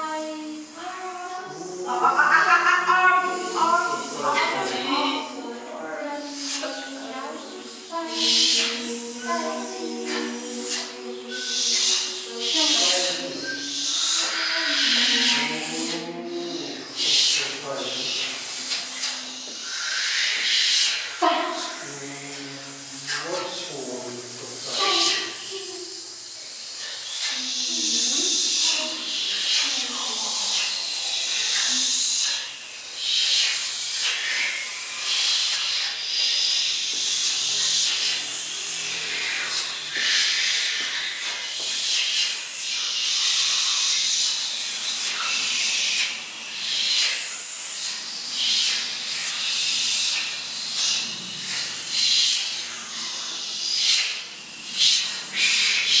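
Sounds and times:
voices whispering and hissing: 0.0 - 56.0
low mumbling: 0.2 - 19.4, 21.5 - 25.9.

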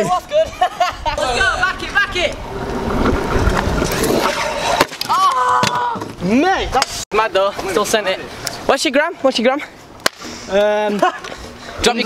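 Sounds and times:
scooter wheels rolling on asphalt: 0.2 - 6.3.

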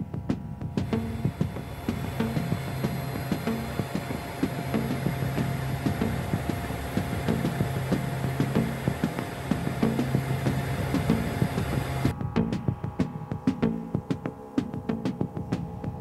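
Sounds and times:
music with pulsing beat: 0.0 - 16.0
steady rushing noise: 0.6 - 14.8.

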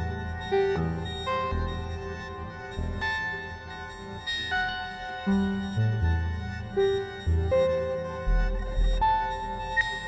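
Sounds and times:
piano-like synth notes: 0.0 - 10.0.

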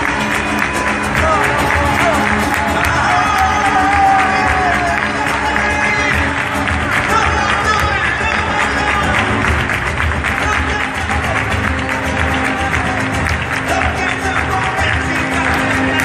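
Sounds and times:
guitar: 0.0 - 16.0
people clapping fast rhythm: 0.0 - 16.0.

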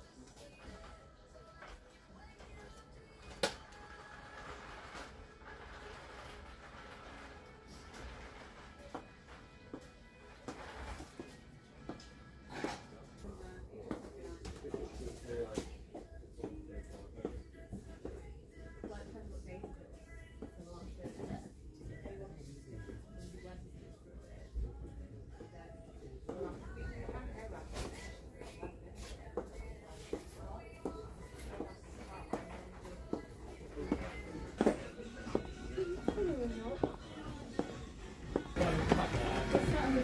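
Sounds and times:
faint indistinct voices: 0.0 - 40.0
quiet background music: 0.0 - 40.0.

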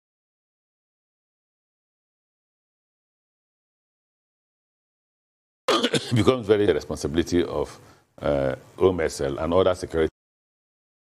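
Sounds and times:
man speaking: 5.7 - 10.2.

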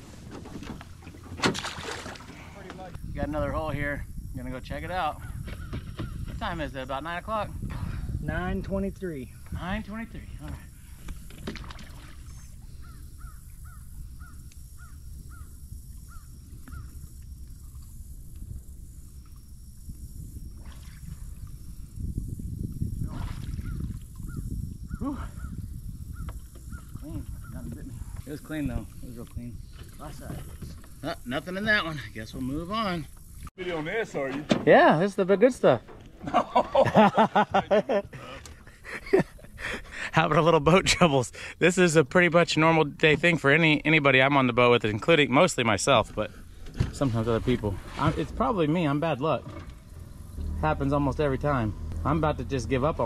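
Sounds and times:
bird calling: 5.2 - 6.4, 11.9 - 17.8, 23.6 - 28.1
man laughing: 36.2 - 40.2.

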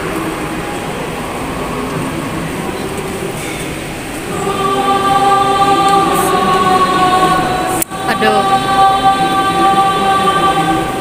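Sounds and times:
choir singing held chord: 0.0 - 11.0.

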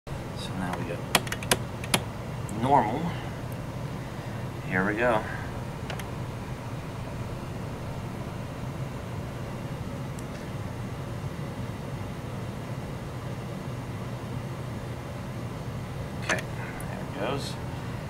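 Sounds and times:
low hum with hiss: 0.1 - 18.0.

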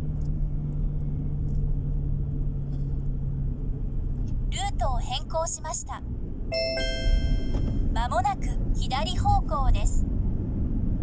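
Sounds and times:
car rumbling on road: 0.0 - 4.6, 7.5 - 11.0
two-note electronic chime: 6.5 - 7.9.

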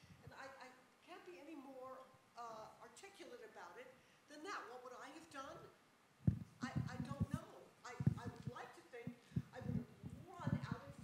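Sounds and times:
woman speaking: 0.2 - 11.0
short low thumps: 6.2 - 11.0.

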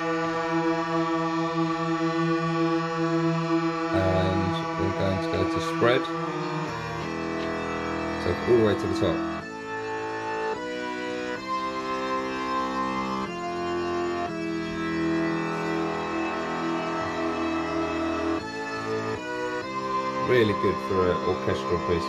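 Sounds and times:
synthesizer playing held chords: 0.0 - 22.0.

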